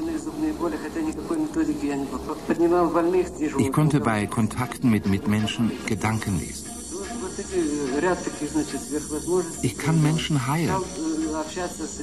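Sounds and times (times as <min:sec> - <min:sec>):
steady hiss: 0:03.7 - 0:12.0.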